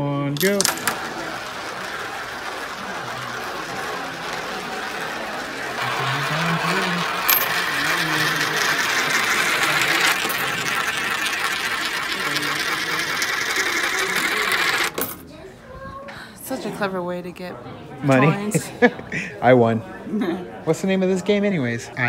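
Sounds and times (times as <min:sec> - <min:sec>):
sharp coin click: 0:00.4 - 0:01.1, 0:07.2 - 0:07.7
coins rolling whir: 0:00.4 - 0:15.2.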